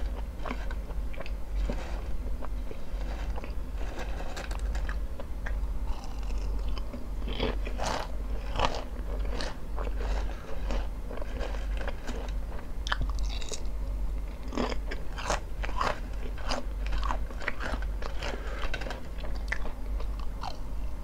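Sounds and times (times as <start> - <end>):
potato chips crunching: 0.0 - 13.7, 14.4 - 20.6.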